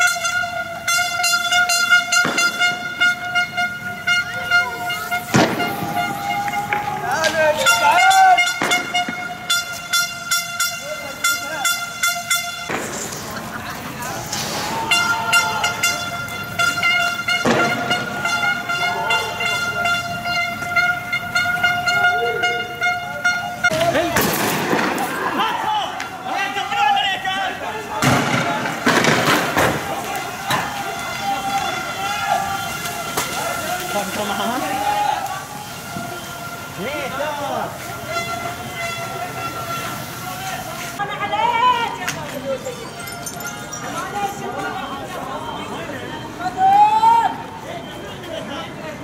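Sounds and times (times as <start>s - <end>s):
horn holding a steady tone: 0.0s - 12.8s, 14.9s - 23.8s
people shouting: 4.2s - 9.0s, 14.0s - 16.8s, 17.4s - 19.9s, 21.8s - 42.0s, 46.4s - 47.5s
sharp bang: 5.2s - 6.2s.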